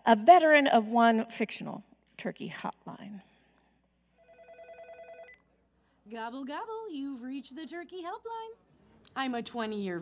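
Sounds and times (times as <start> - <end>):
telephone ringing electronic trill: 4.2 - 5.4.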